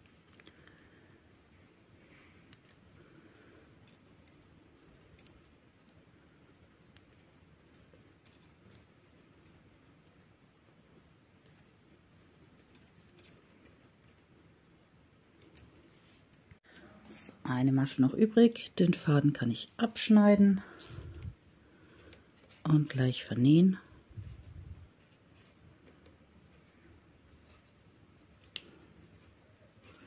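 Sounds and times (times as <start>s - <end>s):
knitting needles clicking: 0.0s - 1.5s, 2.1s - 10.4s, 11.4s - 14.4s, 15.2s - 16.9s, 28.3s - 30.0s.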